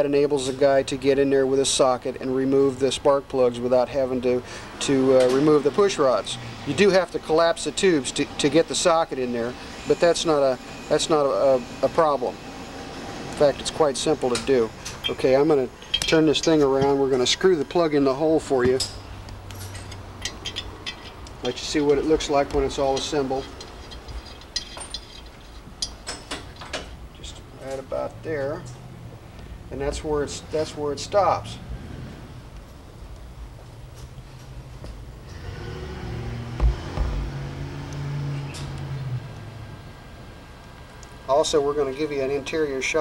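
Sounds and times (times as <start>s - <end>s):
low steady hum: 6.1s - 35.4s
light clicks and taps of metal parts: 14.3s - 17.0s, 18.7s - 26.9s
dull knocks: 36.6s - 37.3s.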